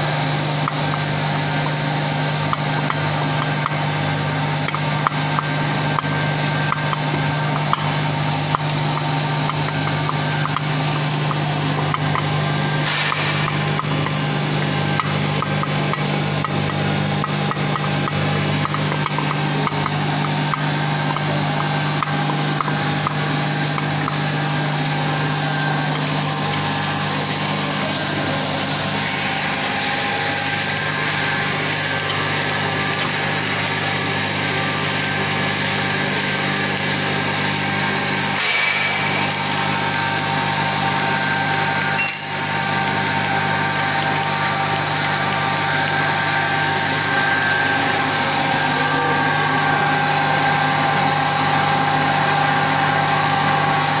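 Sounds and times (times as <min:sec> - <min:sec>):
machine hum: 0:00.0 - 0:54.0
steady machine tones: 0:00.0 - 0:54.0.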